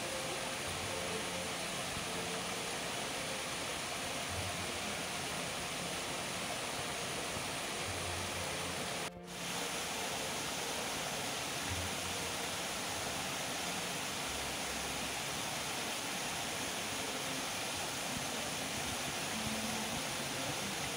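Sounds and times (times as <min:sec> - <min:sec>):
waterfall rushing into pond: 0:00.0 - 0:20.9.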